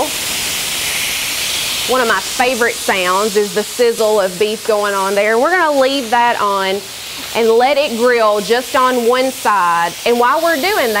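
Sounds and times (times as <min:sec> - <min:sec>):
steak sizzling on a grill: 0:00.0 - 0:11.0.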